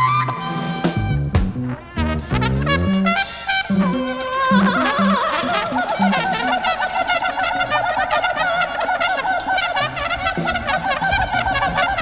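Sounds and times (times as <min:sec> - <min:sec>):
drums: 0:00.0 - 0:07.3, 0:08.6 - 0:12.0
alto saxophone: 0:00.0 - 0:12.0
trumpet: 0:00.0 - 0:12.0
upright bass: 0:01.0 - 0:04.0.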